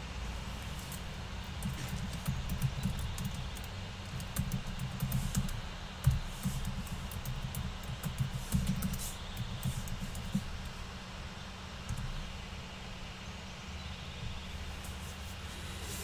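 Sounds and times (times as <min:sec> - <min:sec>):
typing on computer keyboard: 0:01.6 - 0:10.5.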